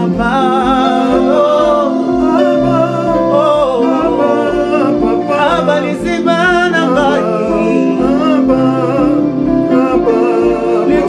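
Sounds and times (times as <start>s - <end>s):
electric guitar: 0.0s - 11.0s
man singing worship song: 0.0s - 11.0s.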